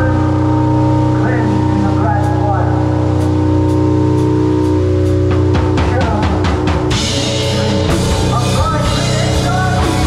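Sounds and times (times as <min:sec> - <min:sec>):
distorted guitars and bass droning: 0:00.0 - 0:10.0
drums: 0:00.0 - 0:10.0.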